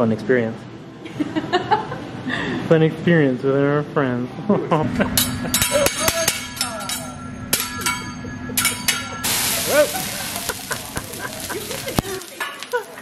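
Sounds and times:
metal spatula clacking on griddle: 5.2 - 9.3
loud sizzling hiss: 9.2 - 13.0.

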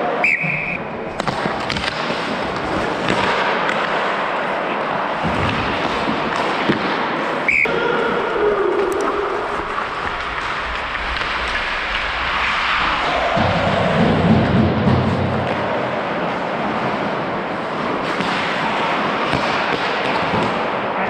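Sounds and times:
sharp crack of stick or puck: 1.1 - 4.6, 5.2 - 7.7, 9.8 - 20.8
skates scraping on ice: 1.1 - 8.1, 8.7 - 21.0.

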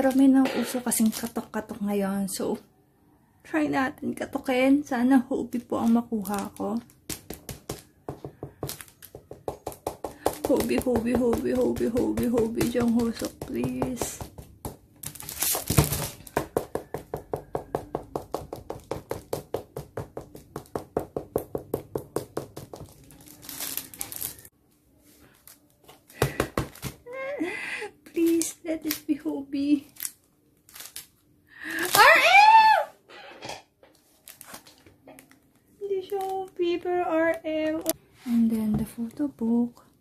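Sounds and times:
plastic wrapping crinkling: 0.0 - 1.7, 5.6 - 13.9, 15.0 - 16.4, 22.7 - 27.0, 28.1 - 32.2, 33.9 - 37.0
woman exclaiming loudly: 31.8 - 33.0.

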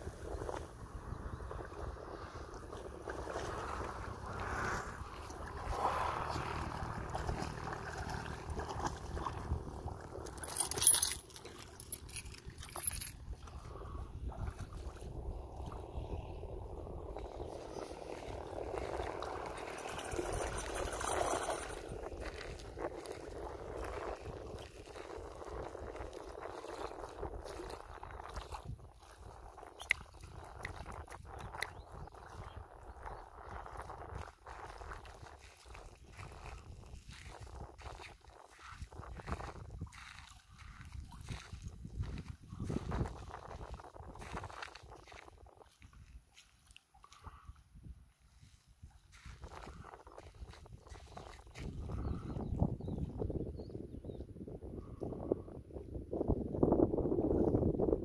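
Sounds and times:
water lapping and sloshing: 0.0 - 52.4.

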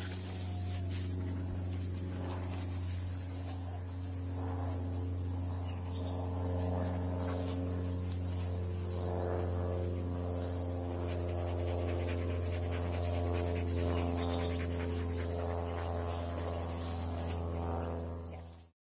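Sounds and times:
high insect buzz: 0.0 - 18.7
steady low hum: 0.0 - 18.7
dog panting: 10.9 - 17.8.

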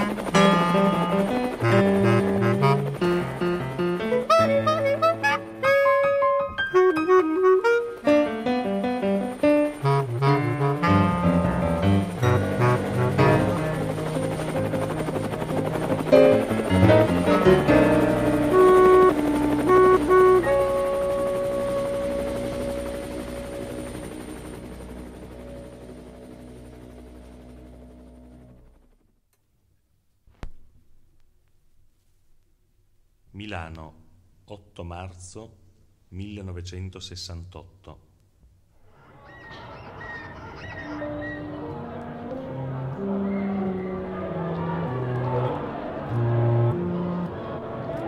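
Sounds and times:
bass clarinet and piano playing: 0.0 - 24.0, 40.0 - 48.0
bass clarinet note: 4.2 - 8.2
high chirping calls: 39.2 - 41.8.

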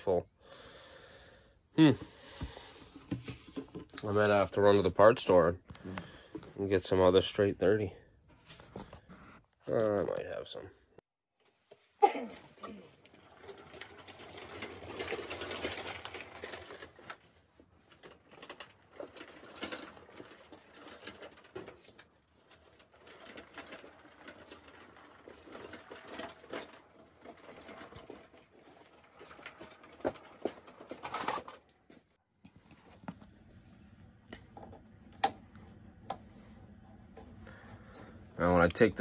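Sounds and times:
tyres rolling over concrete: 12.3 - 32.2
mower frame rattling: 12.4 - 32.0
knocks and clatters: 12.7 - 33.3.

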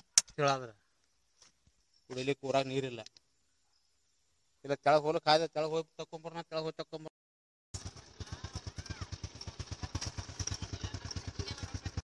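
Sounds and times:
small engine running: 7.8 - 12.0.

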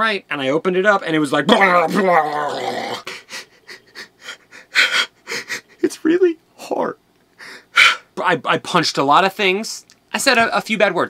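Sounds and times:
man gasping with stifled laughter: 3.0 - 5.8.

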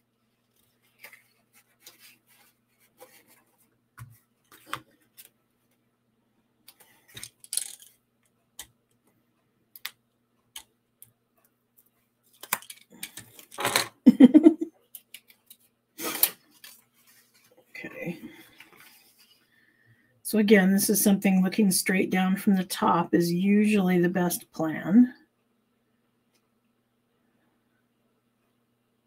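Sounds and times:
paper and card rustling: 0.4 - 5.4, 15.0 - 17.6, 18.3 - 19.4.

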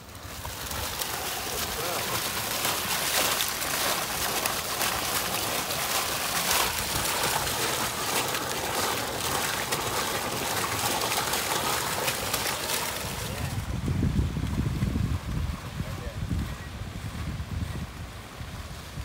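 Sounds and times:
fountain water splashing: 0.0 - 19.0.

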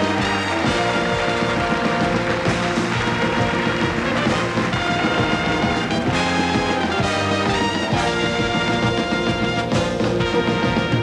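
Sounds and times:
band playing with brass: 0.0 - 11.0.

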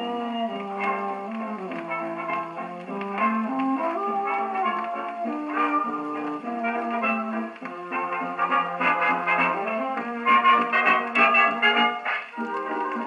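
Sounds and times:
jazz dance band on gramophone: 0.0 - 13.0.

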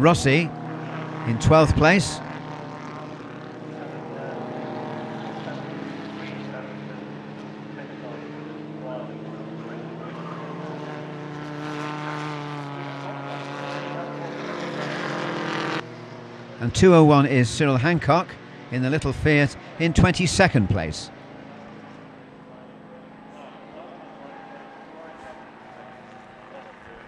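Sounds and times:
racing car engines droning: 0.0 - 27.0.

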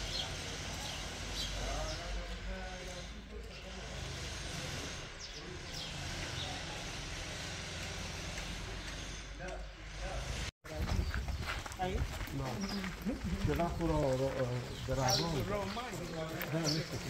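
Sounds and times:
low wind rumble on microphone: 10.7 - 14.0.

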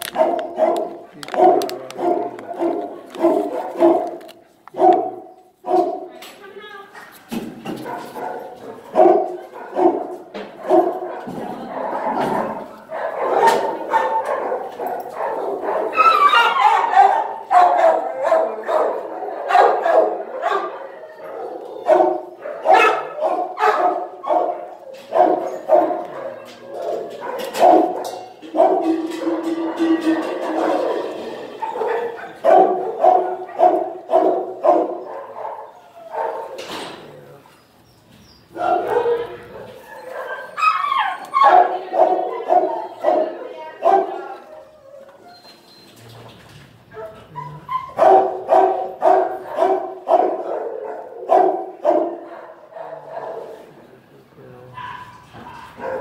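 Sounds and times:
dogs barking: 0.0 - 6.1, 7.7 - 37.5, 38.5 - 44.7, 47.0 - 53.7, 54.7 - 56.0.

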